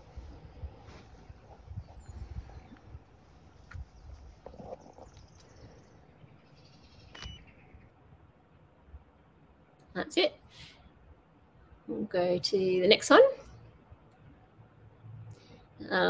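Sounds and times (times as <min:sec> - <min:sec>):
sharp click: 0:07.1 - 0:07.5.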